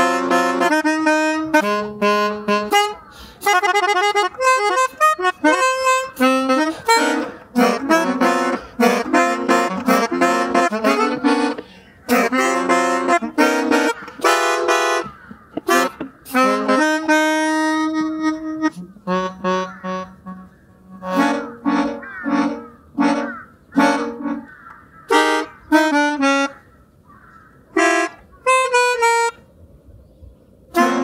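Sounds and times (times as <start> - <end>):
melodica notes: 0.0 - 26.6, 27.7 - 29.4, 30.7 - 31.0.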